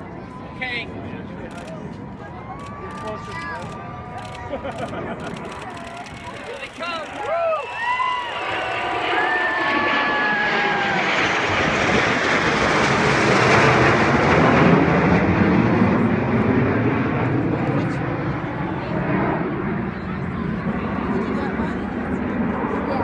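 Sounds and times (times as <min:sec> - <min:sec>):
jets flying over: 0:00.0 - 0:23.0.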